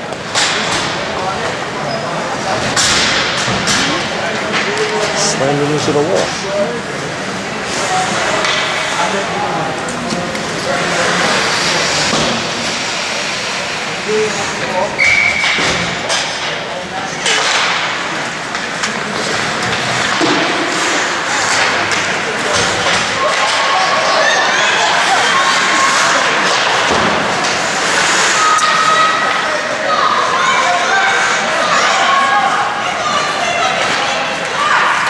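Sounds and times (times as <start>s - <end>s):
voices echoing: 0.0s - 35.0s
skates scraping ice: 4.0s - 14.6s, 17.3s - 29.8s.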